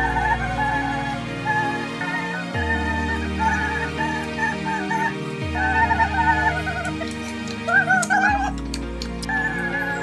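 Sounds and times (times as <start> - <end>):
ornamented melody over drone: 0.0 - 10.0.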